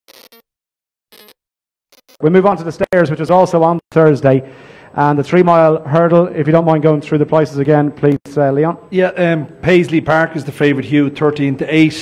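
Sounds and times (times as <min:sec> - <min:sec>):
electronic glitch blips: 0:00.1 - 0:00.5, 0:01.1 - 0:02.2.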